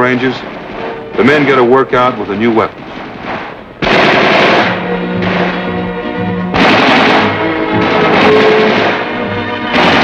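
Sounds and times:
music playing: 0.0s - 2.7s, 3.8s - 10.0s
machine-gun fire: 3.2s - 5.7s, 6.5s - 9.1s, 9.7s - 10.0s.

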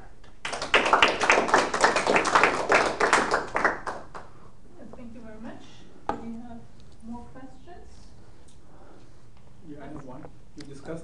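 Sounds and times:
audience applause: 0.4s - 4.2s.

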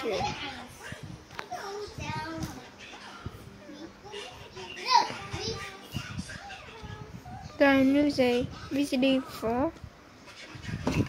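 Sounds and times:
children talking and playing: 0.0s - 11.0s.

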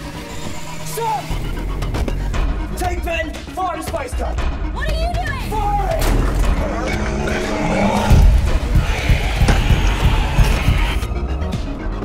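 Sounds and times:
heavy low music bed: 0.0s - 12.0s
wordless vocal cry: 6.6s - 11.0s.

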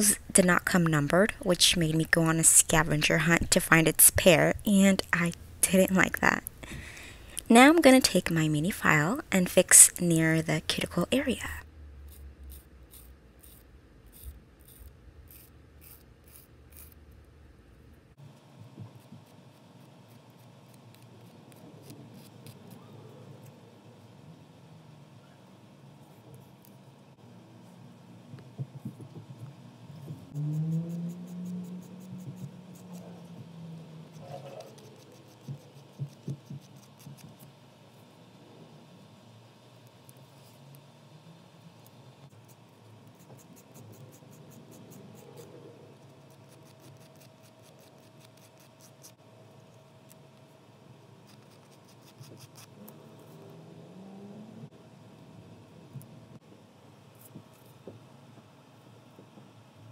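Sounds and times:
nail file rasping plastic: 12.1s - 17.0s, 34.1s - 37.5s, 42.5s - 49.2s, 51.3s - 52.7s.

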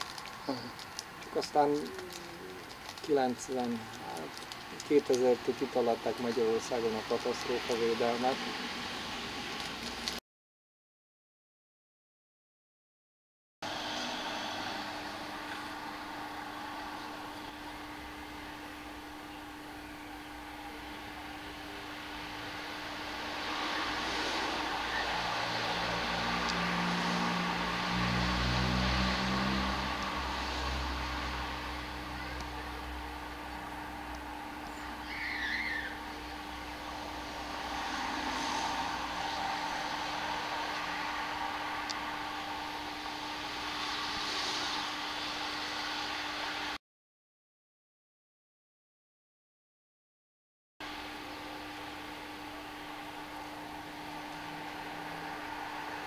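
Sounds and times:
car passing: 13.6s - 46.8s, 53.0s - 56.0s
steady low hum: 13.6s - 46.8s, 50.8s - 56.0s
bird call: 34.6s - 36.1s.

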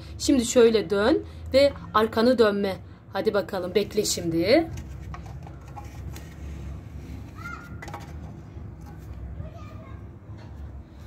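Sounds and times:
distant children's voices: 5.4s - 11.0s.

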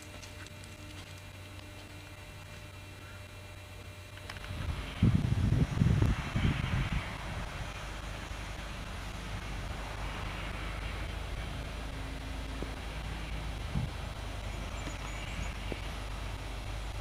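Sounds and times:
wind buffeting microphone: 4.4s - 17.0s.

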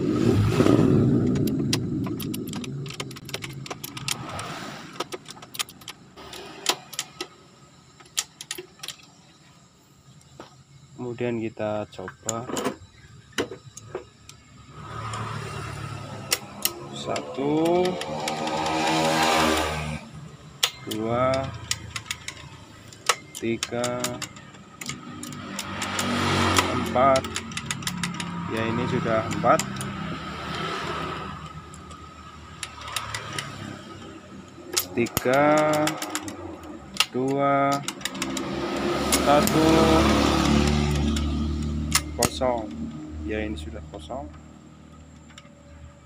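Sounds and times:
pitched drone with hiss: 6.0s - 44.7s
gear selector metallic click: 20.5s - 28.4s, 31.3s - 42.8s.

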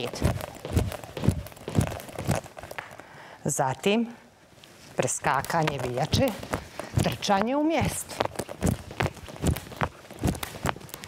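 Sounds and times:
feet landing on hard floor: 0.0s - 2.8s, 5.8s - 11.0s
skipping rope hitting floor: 0.0s - 2.9s, 5.4s - 11.0s.

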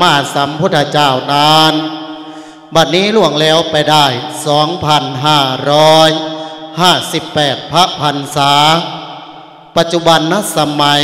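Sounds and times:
monk chanting into microphone: 0.0s - 11.0s.

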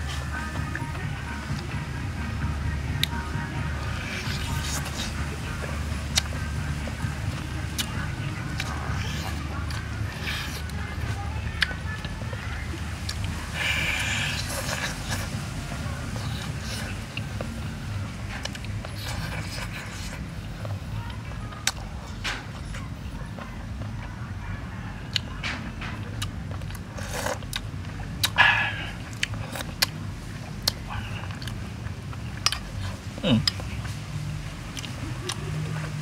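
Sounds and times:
chewing and smacking: 0.0s - 36.0s
low background rumble: 0.0s - 36.0s.

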